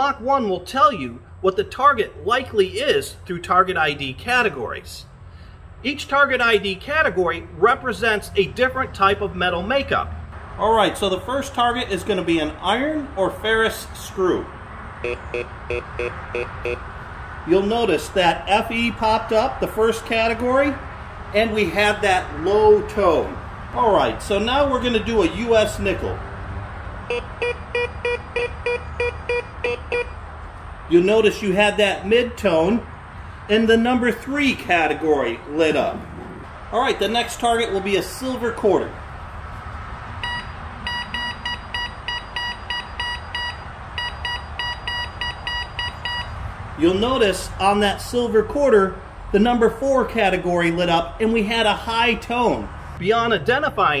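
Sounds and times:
metal detector short beeps: 40.2 - 46.3.

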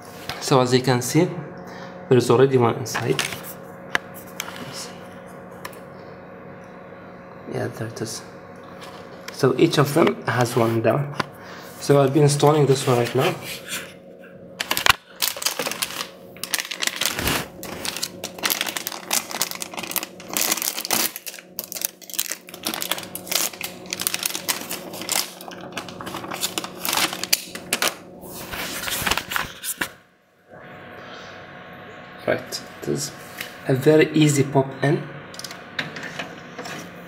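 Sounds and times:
steady low hum: 0.0 - 37.0
plastic bag crinkling: 14.6 - 29.9.

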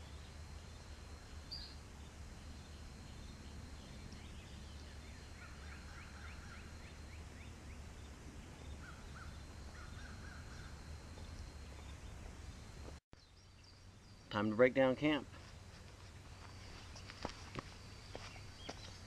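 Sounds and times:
distant bird chirping: 0.0 - 19.0.

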